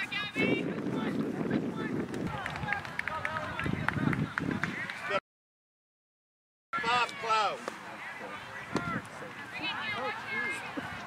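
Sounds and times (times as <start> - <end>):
wind rumble on microphone: 0.0 - 5.2.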